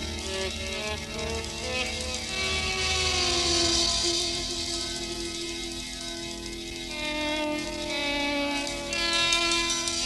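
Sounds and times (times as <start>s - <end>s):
hissy high wash: 0.0s - 9.2s
sustained sliding lead note: 0.1s - 7.9s.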